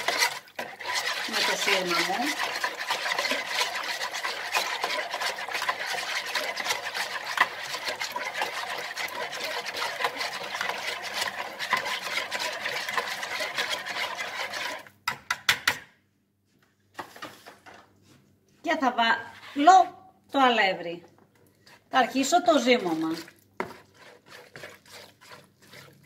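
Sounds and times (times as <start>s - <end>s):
whisk swishing in a plastic bowl: 0.0s - 14.9s, 21.6s - 26.0s
whisk tapping: 0.0s - 15.6s.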